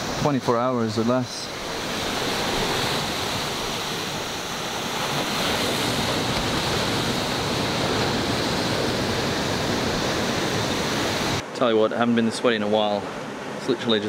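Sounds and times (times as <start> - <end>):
ocean surf on rocky shore: 0.0 - 14.0.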